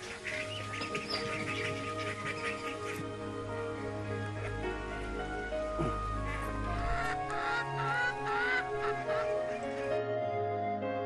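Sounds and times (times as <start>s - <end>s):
rising bird calls: 0.0s - 10.0s
background music: 0.0s - 11.0s.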